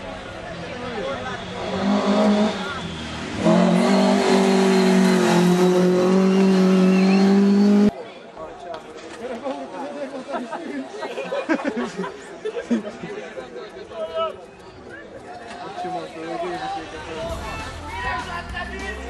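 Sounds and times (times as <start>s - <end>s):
crowd chatter: 0.0s - 19.0s
race car engine at high revs: 1.4s - 7.9s.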